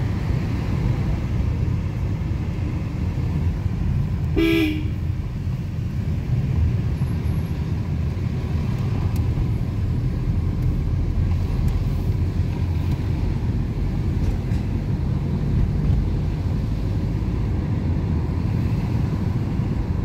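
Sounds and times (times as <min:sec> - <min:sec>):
car engine and tyre rumble: 0:00.0 - 0:20.0
car horn honk: 0:04.4 - 0:05.1.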